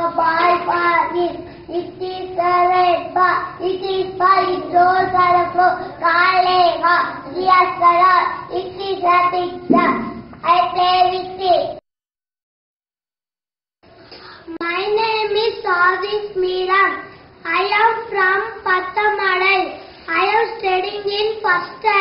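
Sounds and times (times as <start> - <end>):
young children singing: 0.0 - 7.7.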